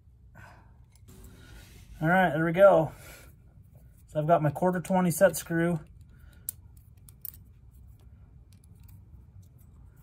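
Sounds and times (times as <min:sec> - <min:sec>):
hex key clicking and scraping: 0:05.9 - 0:10.0.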